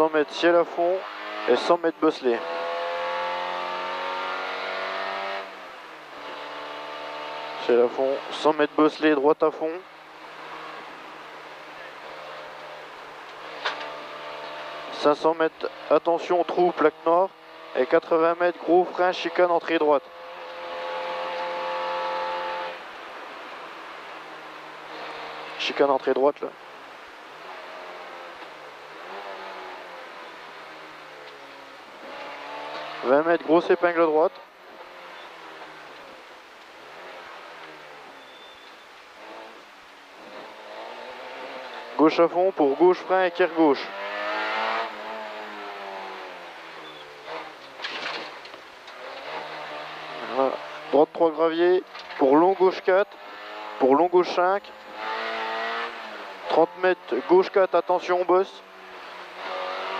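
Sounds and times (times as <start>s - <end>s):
rally car engine revving: 0.0s - 59.9s
road and wind noise: 0.0s - 59.9s
car engine from inside cabin: 2.4s - 7.7s.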